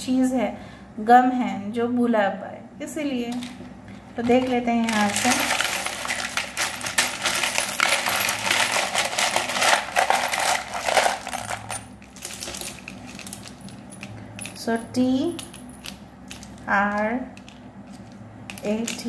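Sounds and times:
plastic letters rattling in a bowl: 0:04.2 - 0:14.6.

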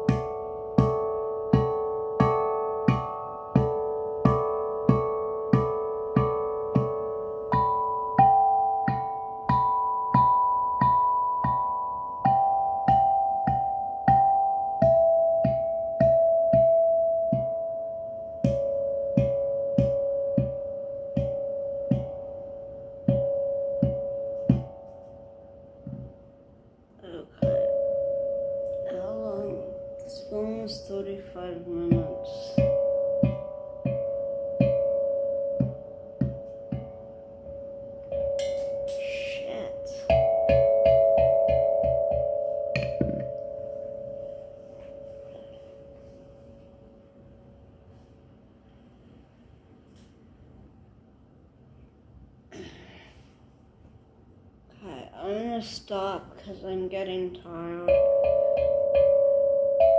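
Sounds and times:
steel tongue drum notes: 0:00.0 - 0:48.1, 0:54.8 - 0:59.9.

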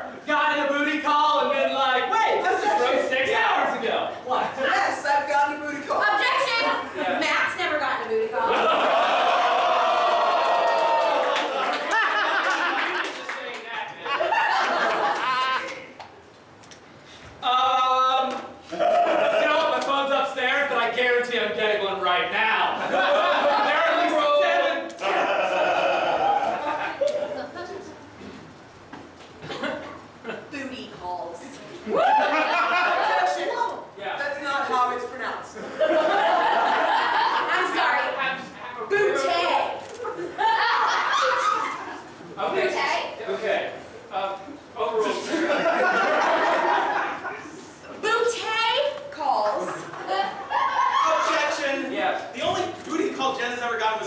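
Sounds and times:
woman laughing: 0:25.3 - 0:27.9.

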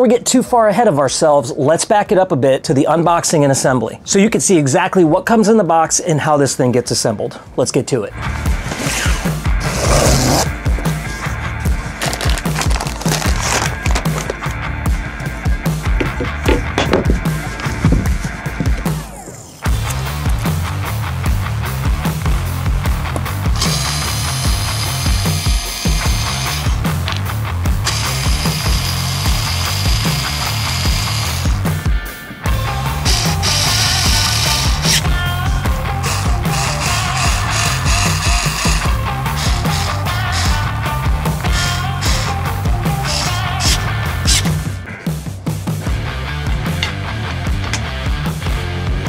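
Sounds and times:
heavy rock music: 0:08.2 - 0:49.0
electric screwdriver driving screws: 0:23.6 - 0:27.2, 0:27.8 - 0:31.6, 0:33.0 - 0:35.1, 0:36.0 - 0:40.6, 0:41.5 - 0:42.4, 0:43.0 - 0:44.5.

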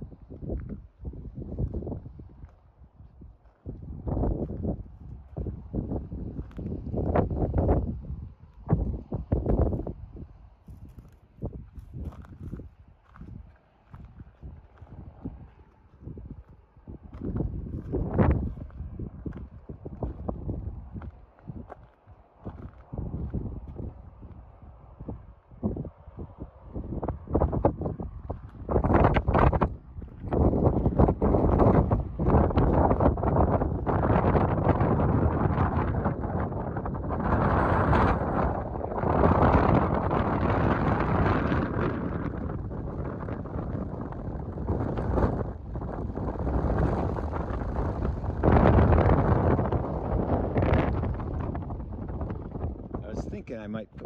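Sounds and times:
gusty wind buffeting microphone: 0:00.0 - 0:54.0.

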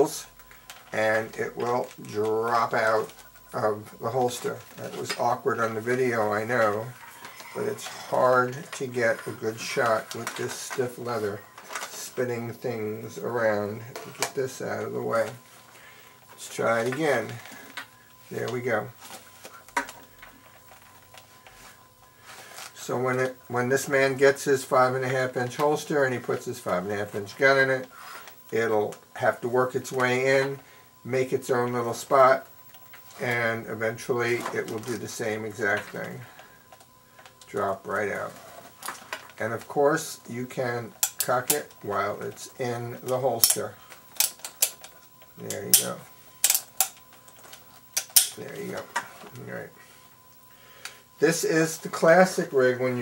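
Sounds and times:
revolver handling ticks: 0:40.9 - 0:49.4.

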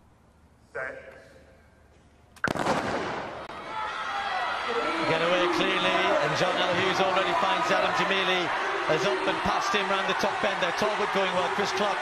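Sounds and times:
stadium crowd noise: 0:03.2 - 0:12.0.

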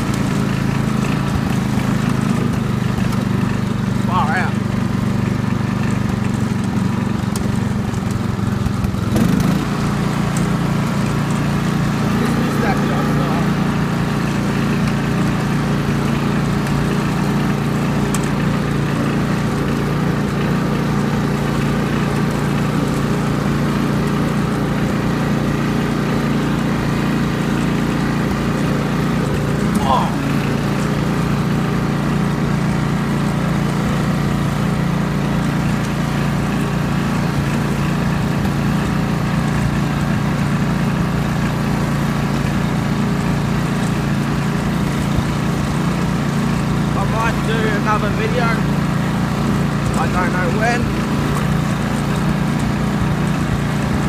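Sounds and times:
ride-on lawn mower engine: 0:00.0 - 0:54.0.

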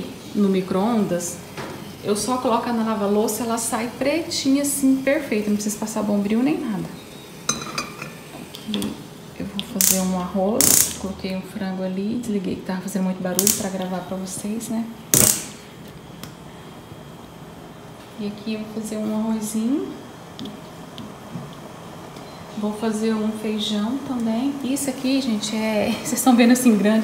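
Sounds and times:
woman talking: 0:00.0 - 0:01.4, 0:02.0 - 0:07.0, 0:08.7 - 0:15.0, 0:18.2 - 0:20.0, 0:22.5 - 0:27.0
gas hob igniter clicking and hiss: 0:00.0 - 0:11.4, 0:12.4 - 0:16.4, 0:18.9 - 0:27.0
kitchen room noise: 0:00.0 - 0:27.0.

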